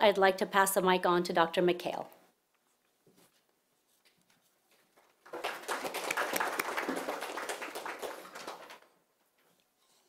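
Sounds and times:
small group clapping: 4.9 - 9.0.

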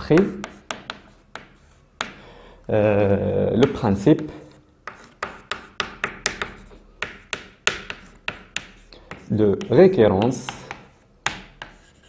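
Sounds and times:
chalk tapping on blackboard: 0.0 - 2.2, 3.6 - 12.0.

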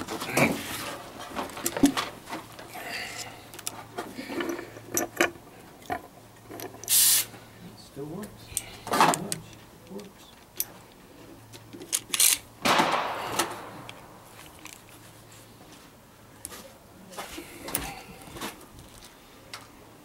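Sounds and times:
pistol bolt clicks and rasps: 11.8 - 12.5.

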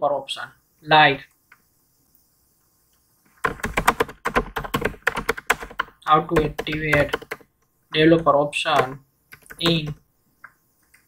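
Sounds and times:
fast typing on keyboard: 3.4 - 7.5, 8.2 - 10.0.

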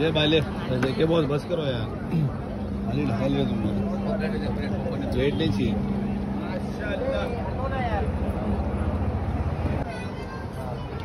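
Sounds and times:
people talking: 0.0 - 9.0
constant hum: 0.0 - 11.0.

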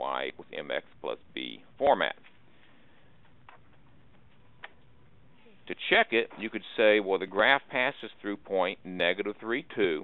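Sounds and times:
steady low hiss: 0.0 - 10.0.

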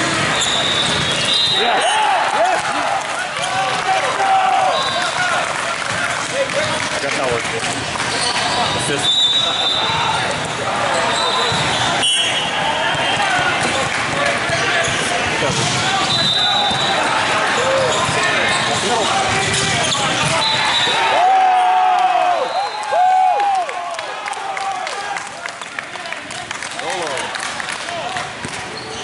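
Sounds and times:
spectators chattering: 0.0 - 21.8
players calling out: 0.0 - 26.0
shoe squeaks: 0.2 - 1.6, 8.1 - 10.0, 10.9 - 12.6, 17.6 - 21.0, 28.7 - 29.0.

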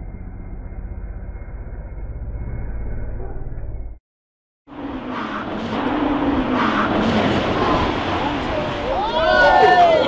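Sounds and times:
rally car engine running hard: 4.7 - 8.9.

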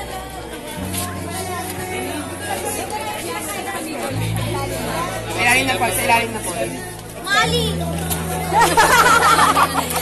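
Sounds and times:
young voices chattering: 0.0 - 10.0.

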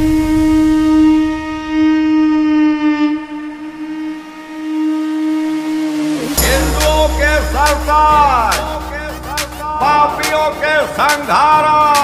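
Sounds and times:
conch shell blown: 0.0 - 10.6.

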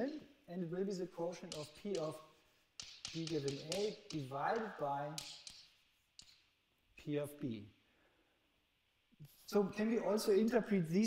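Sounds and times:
chalk scratching on blackboard: 1.2 - 6.6
chalk tap on blackboard: 1.3 - 6.6.

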